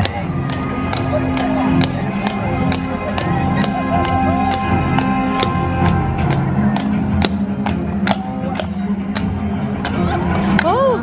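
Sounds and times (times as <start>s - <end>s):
parade music over loudspeakers: 0.0s - 11.0s.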